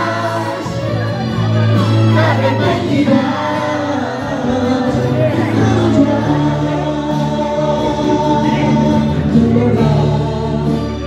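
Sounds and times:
electronic keyboard backing: 0:00.0 - 0:11.0
man singing into microphone: 0:00.0 - 0:11.0.

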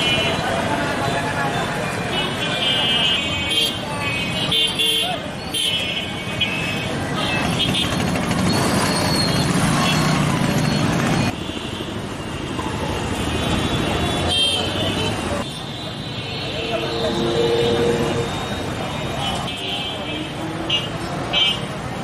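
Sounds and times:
people talking: 0:00.0 - 0:06.3, 0:14.5 - 0:20.8
motor traffic: 0:00.0 - 0:22.0.

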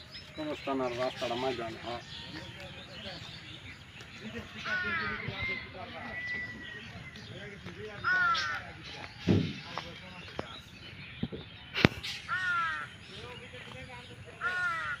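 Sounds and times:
bird calling: 0:00.0 - 0:15.0.

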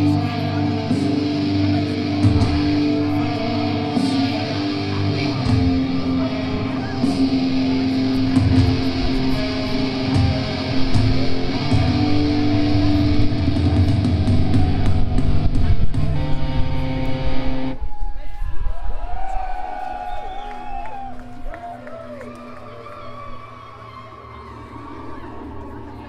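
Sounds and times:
metal band playing live: 0:00.0 - 0:17.8
audience shouting and cheering: 0:00.0 - 0:26.0.

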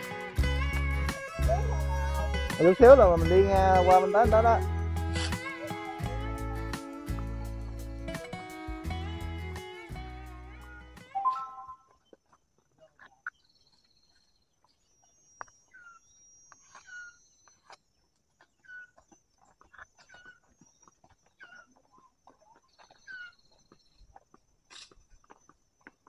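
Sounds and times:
thin high steady tone: 0:11.2 - 0:11.8.

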